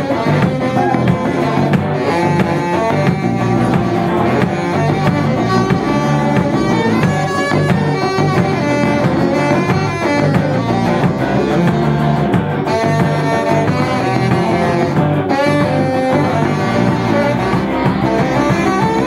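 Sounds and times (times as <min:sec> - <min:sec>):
electric guitar: 0:00.0 - 0:19.0
live band playing: 0:00.0 - 0:19.0.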